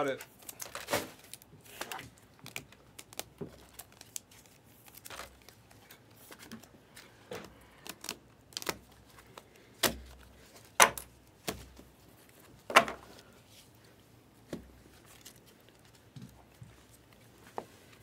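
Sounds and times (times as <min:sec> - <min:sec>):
cards crinkling and clicking: 0:00.0 - 0:13.0, 0:14.9 - 0:17.3.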